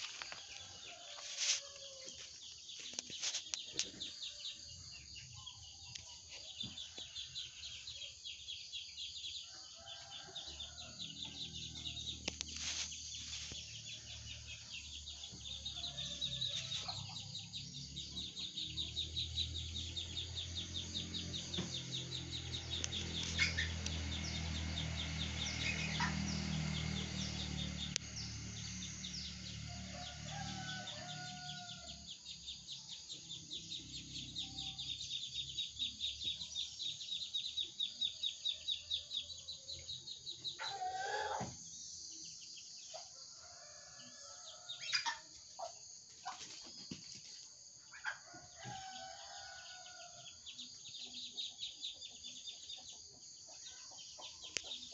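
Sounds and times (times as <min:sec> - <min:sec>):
rooster crowing: 0:09.4 - 0:12.2, 0:14.3 - 0:32.3, 0:40.5 - 0:41.5, 0:43.3 - 0:45.2, 0:48.2 - 0:50.6
chickens clucking: 0:22.8 - 0:24.0, 0:25.6 - 0:26.7, 0:40.6 - 0:41.5.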